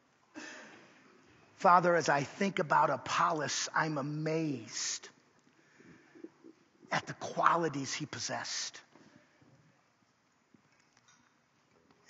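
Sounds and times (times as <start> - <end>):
faint soft sounds in hall: 0.0 - 12.0
man praying: 1.6 - 5.2, 6.9 - 8.9.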